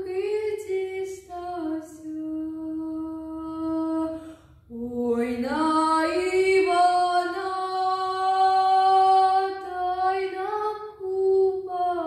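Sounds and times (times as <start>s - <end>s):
singer breath: 4.1s - 4.7s.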